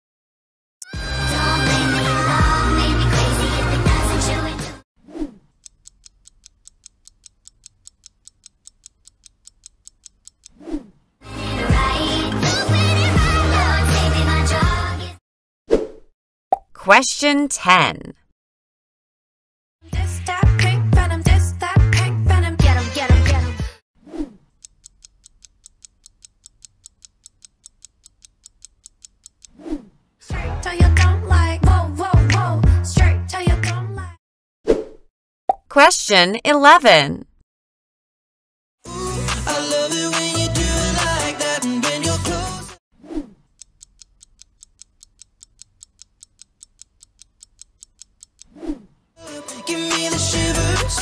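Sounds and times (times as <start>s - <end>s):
clock ticking fast: 5.5s - 10.6s, 24.5s - 29.6s, 43.5s - 48.5s
countdown timer ticking: 43.6s - 48.5s.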